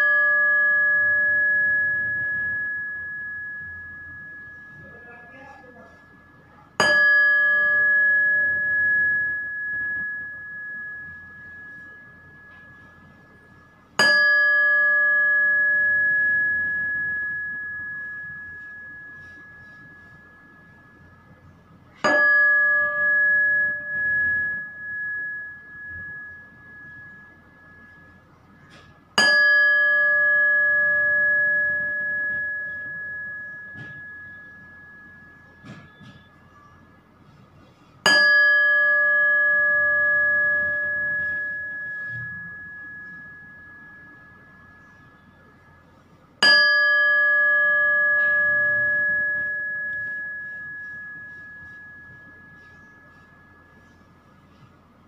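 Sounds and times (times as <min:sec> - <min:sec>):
meditation bell ringing: 0:00.0 - 0:55.0.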